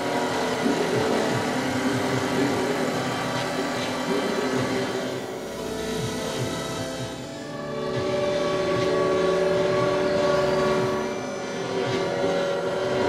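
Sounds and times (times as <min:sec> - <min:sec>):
sustained noise music tones: 0:00.0 - 0:13.0.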